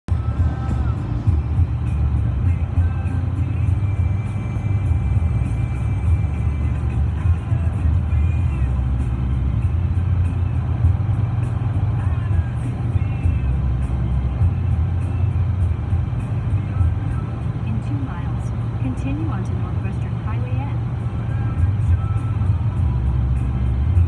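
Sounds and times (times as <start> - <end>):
music with steady beat: 0.1 - 18.2, 18.8 - 24.0
car driving rumble: 0.1 - 24.0.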